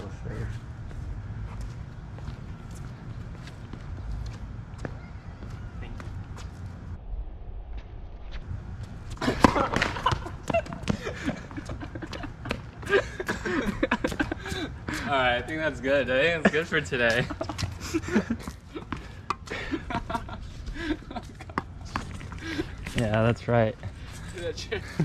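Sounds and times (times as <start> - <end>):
wind rumbling on microphone: 5.4 - 9.2
tennis ball hit: 9.2 - 10.2.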